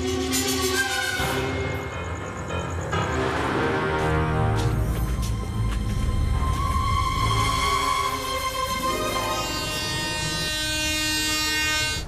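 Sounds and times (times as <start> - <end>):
train horn blast: 8.8 - 12.0.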